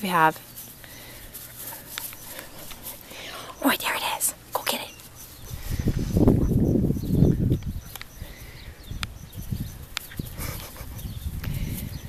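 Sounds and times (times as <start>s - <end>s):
footsteps on grass: 0.0s - 3.8s
microphone handling rumble: 5.4s - 8.1s.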